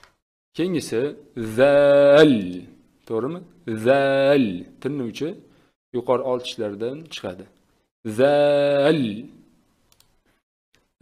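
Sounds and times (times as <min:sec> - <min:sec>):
man speaking: 0:00.6 - 0:05.4, 0:06.0 - 0:09.5
computer mouse clicks: 0:09.9 - 0:10.9.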